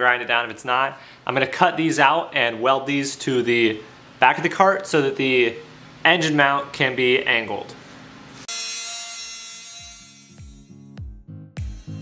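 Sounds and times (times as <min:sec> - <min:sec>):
angle grinder cutting steel: 0:08.4 - 0:10.8
background music bass note: 0:09.8 - 0:12.0.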